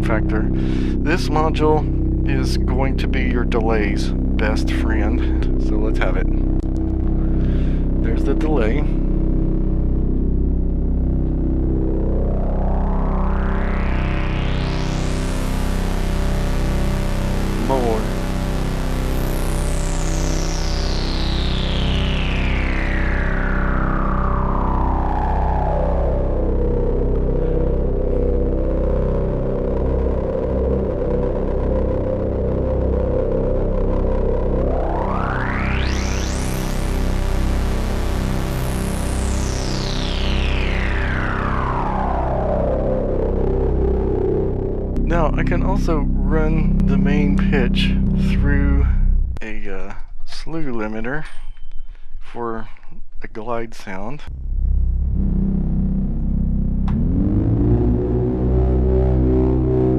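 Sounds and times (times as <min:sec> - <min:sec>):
analog synth filter sweep: 0:00.0 - 0:51.0, 0:53.8 - 0:59.9.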